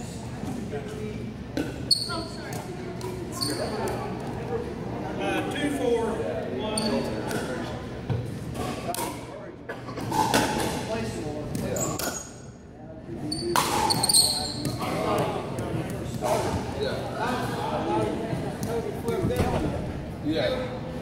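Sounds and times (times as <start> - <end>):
sneaker squeaks: 1.6 - 4.1, 6.7 - 7.5, 11.5 - 12.5, 13.2 - 15.1.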